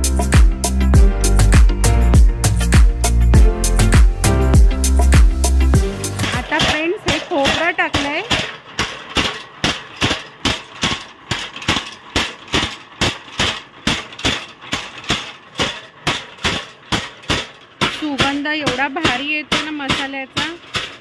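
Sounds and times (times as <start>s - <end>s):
pestles pounding in iron bowl: 0.0s - 21.0s
person speaking: 6.2s - 8.3s, 18.0s - 20.6s.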